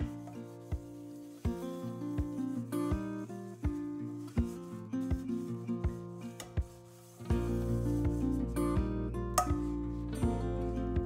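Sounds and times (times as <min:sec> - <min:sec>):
sponge scrubbing a pot: 0:00.0 - 0:08.8
plucked-string background music: 0:00.0 - 0:11.0.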